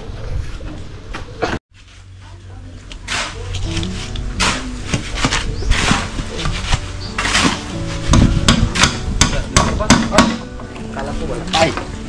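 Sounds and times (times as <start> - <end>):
hammer striking bamboo rail: 7.2 - 10.5.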